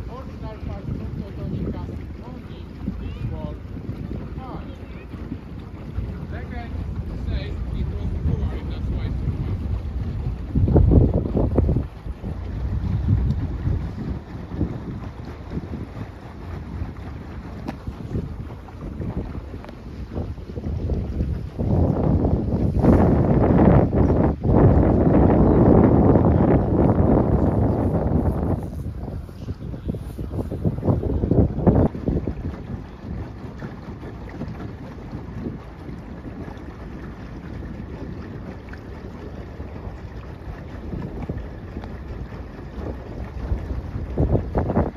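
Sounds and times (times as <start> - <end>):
boat rumble: 0.0 - 44.9
wind buffeting microphone: 0.0 - 44.9.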